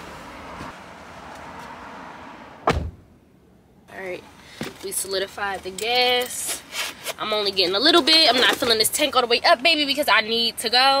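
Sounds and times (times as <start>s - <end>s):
car door thump: 2.6s - 3.1s.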